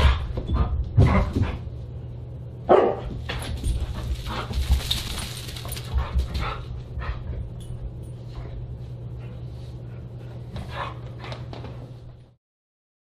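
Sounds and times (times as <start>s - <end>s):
dog barking and yipping: 2.7s - 3.1s.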